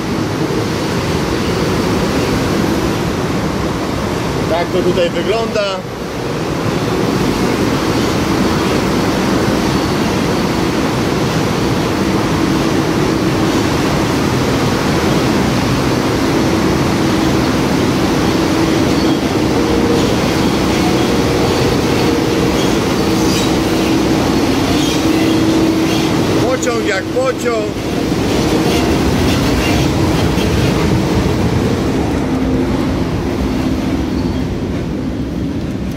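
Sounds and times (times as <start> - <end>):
train rumbling in tunnel: 0.0 - 35.9.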